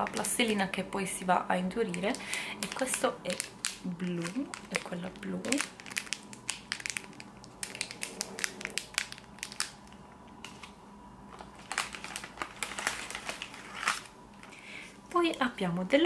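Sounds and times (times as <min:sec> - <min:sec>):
foil and plastic packaging crinkling: 0:00.0 - 0:15.1.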